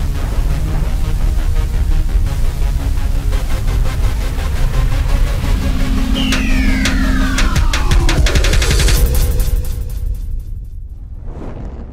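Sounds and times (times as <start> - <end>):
music with low rumble and pulse: 0.0 - 11.9
falling pitch sweep: 5.1 - 9.2
held low tone: 5.4 - 8.6.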